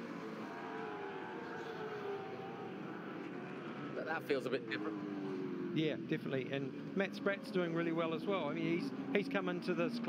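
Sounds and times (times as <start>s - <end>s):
race car engines: 0.0s - 10.0s.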